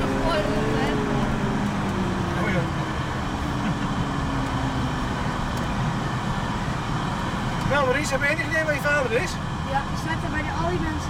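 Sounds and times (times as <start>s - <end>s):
vehicle engine running slowly: 0.0s - 11.0s.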